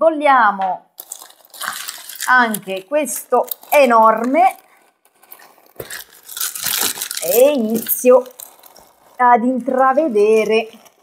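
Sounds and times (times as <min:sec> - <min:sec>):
plastic bag crinkling: 0:01.0 - 0:11.0.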